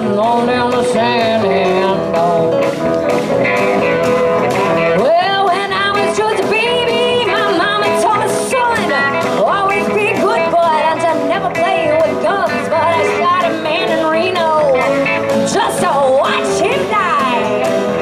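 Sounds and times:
drums: 0.0 - 18.0
strummed acoustic guitar: 0.0 - 18.0
woman singing: 5.0 - 17.7.

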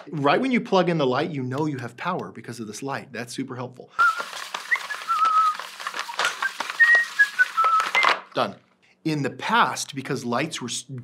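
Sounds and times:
man whistling a tune: 4.0 - 8.2.

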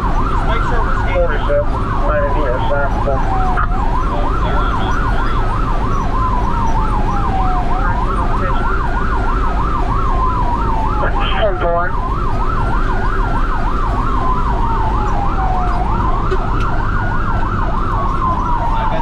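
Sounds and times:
ambulance siren wail and yelp: 0.0 - 19.0
engine and road rumble: 0.0 - 19.0.

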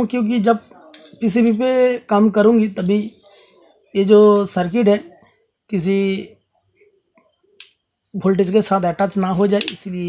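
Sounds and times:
man speaking: 0.0 - 7.0, 8.1 - 10.0.

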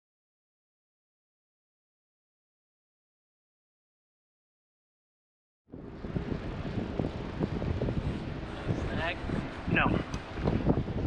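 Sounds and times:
wind buffeting microphone: 5.7 - 11.0.

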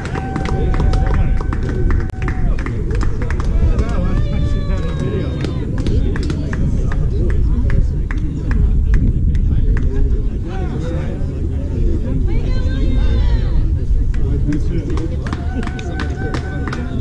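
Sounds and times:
distant people calling and talking: 0.0 - 17.0
heavy low rumble: 0.0 - 17.0.

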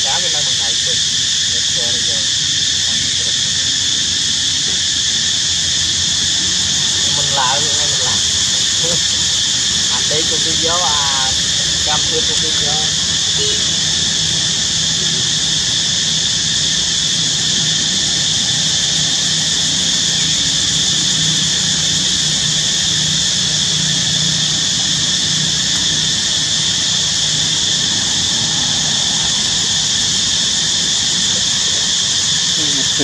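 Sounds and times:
loud steady hiss: 0.0 - 33.0.

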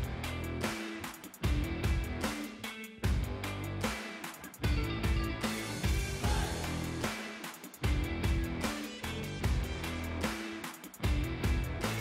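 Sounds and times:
upbeat background music: 0.0 - 12.0.

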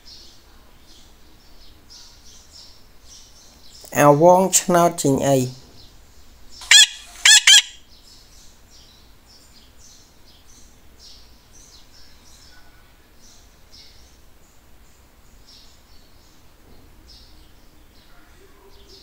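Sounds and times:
faint bird chirping: 0.0 - 19.0
loud high-pitched bird calls: 6.6 - 8.0.

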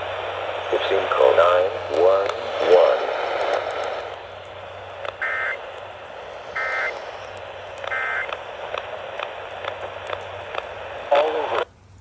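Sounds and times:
radio static: 0.0 - 11.7
crackling clicks: 3.2 - 12.0
alert data tone bursts: 5.2 - 5.6, 6.5 - 7.0, 7.9 - 8.3.

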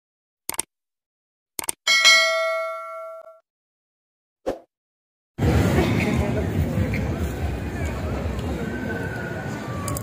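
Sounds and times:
notification bell ding: 1.9 - 3.4.

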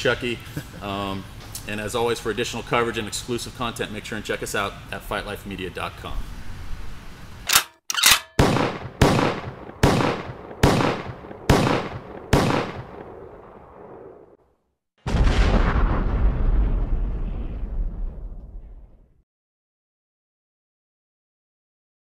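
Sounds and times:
loud sharp bangs: 7.5 - 13.2
deep boom with long rumble: 15.1 - 19.2.

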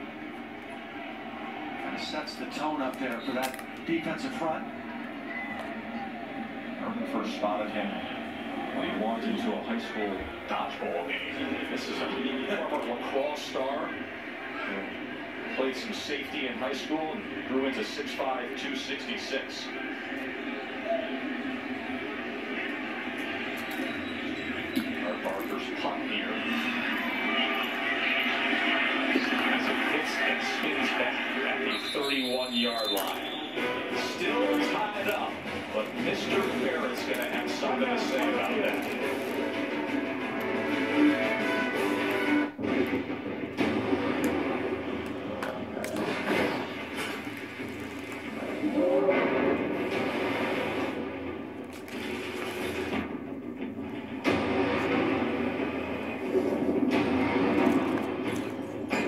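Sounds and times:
indistinct voices: 0.0 - 41.6, 44.2 - 49.9
crowd noise from television: 0.0 - 59.0.

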